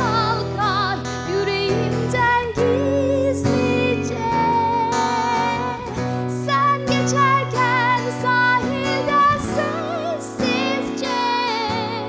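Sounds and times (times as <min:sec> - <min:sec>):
strummed acoustic guitar: 0:00.0 - 0:12.0
woman singing with vibrato: 0:00.0 - 0:12.0.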